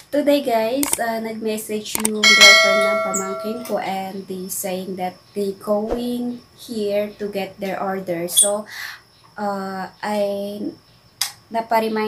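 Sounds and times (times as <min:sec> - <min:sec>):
click: 0:02.0 - 0:02.2
bright bell ding: 0:02.2 - 0:03.8.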